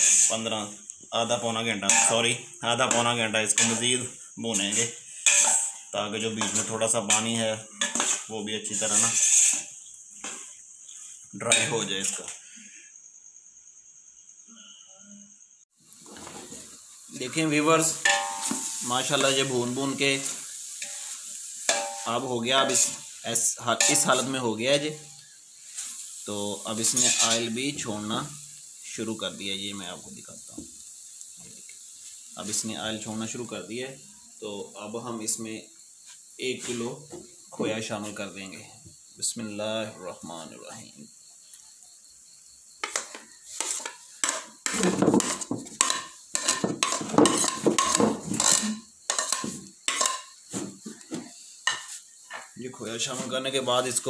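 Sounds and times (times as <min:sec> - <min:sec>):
food sizzling in a pot: 0:00.0 - 0:14.4, 0:15.6 - 0:54.0
spoon scraping and knocking bowl: 0:05.2 - 0:05.8, 0:06.4 - 0:10.4, 0:18.0 - 0:19.3, 0:42.8 - 0:50.4.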